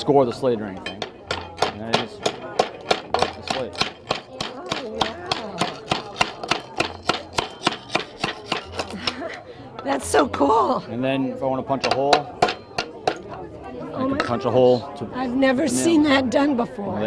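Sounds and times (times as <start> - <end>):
hammer cracking roofing slate: 1.3 - 8.9.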